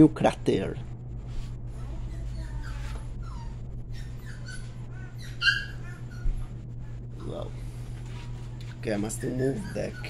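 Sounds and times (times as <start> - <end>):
steady low hum: 0.0 - 10.0
high-pitched animal calls: 2.1 - 6.5, 9.1 - 10.0.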